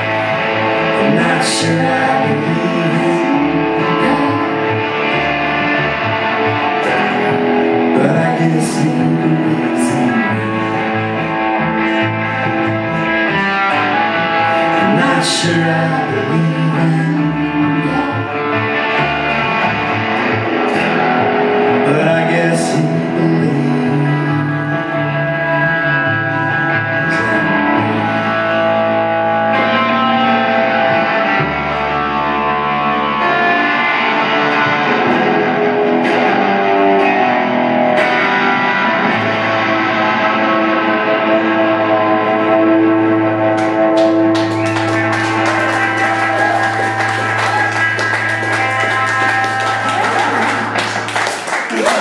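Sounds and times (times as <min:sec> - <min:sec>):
double bass line: 0:00.0 - 0:51.2
electric guitar: 0:00.0 - 0:52.0.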